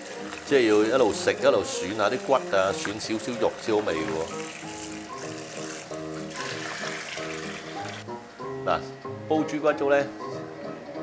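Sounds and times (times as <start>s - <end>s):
background music: 0.0s - 11.0s
tap water splashing into a bowl: 2.1s - 4.7s.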